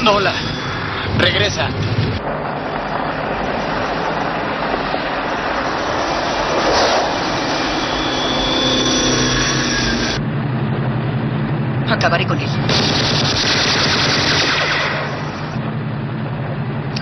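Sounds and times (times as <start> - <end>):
vehicle engines running: 0.0 - 17.0.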